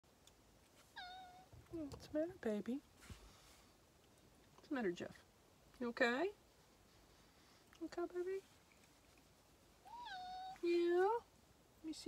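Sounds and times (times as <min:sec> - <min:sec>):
cat meowing: 0:00.9 - 0:01.6, 0:09.8 - 0:10.6.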